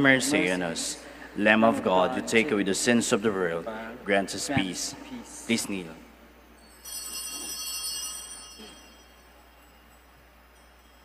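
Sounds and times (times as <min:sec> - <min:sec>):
altar bells ringing: 0:06.4 - 0:11.0.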